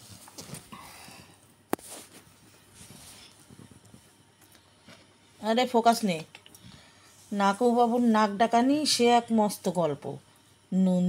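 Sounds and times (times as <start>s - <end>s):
rustling handling noise: 0.0s - 5.4s.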